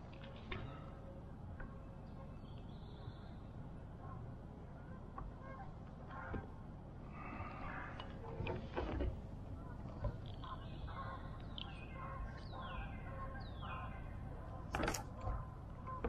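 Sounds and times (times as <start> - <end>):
birds calling: 0.1 - 16.0.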